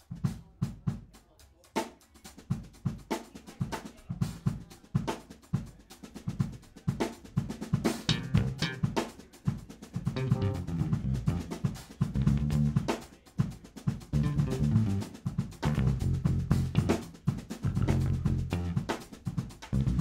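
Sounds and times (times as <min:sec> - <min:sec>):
drum kit played freely: 0:00.0 - 0:20.0.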